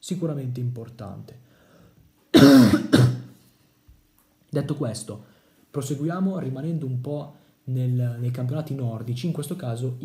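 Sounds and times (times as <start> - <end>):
man coughing: 2.3 - 3.4.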